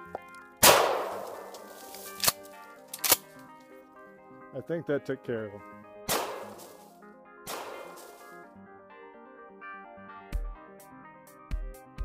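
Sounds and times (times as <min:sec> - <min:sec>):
background music: 0:00.0 - 0:12.0
shotgun blasts: 0:00.6 - 0:01.6, 0:06.1 - 0:06.8, 0:07.5 - 0:08.3.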